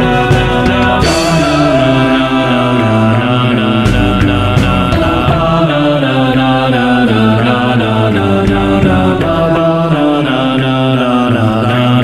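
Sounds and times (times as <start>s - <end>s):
a cappella voices singing chords: 0.0s - 12.0s.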